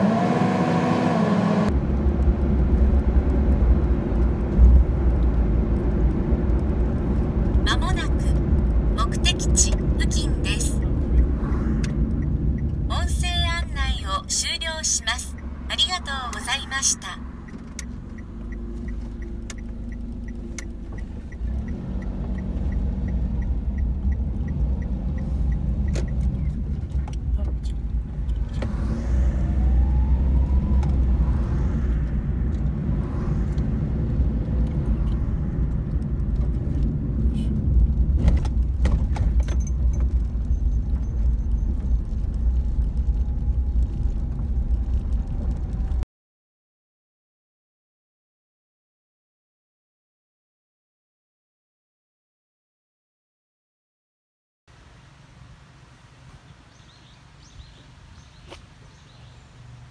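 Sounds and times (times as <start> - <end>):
engine and road rumble: 0.0 - 46.1, 54.7 - 59.9.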